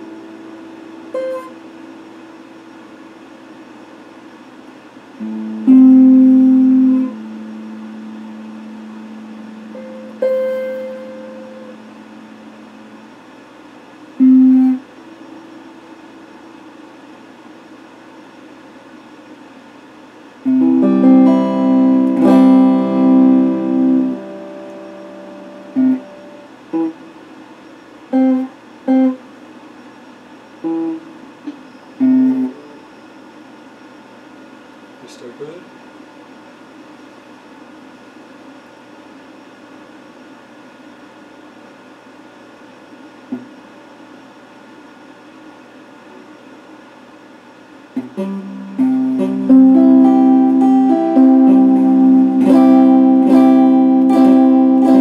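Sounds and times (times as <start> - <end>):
electric guitar notes: 0.0 - 3.2, 5.2 - 13.3, 14.2 - 16.6, 20.4 - 27.2, 28.1 - 29.2, 30.6 - 31.1, 32.0 - 32.8, 48.0 - 55.0
faint steady hum: 0.0 - 55.0.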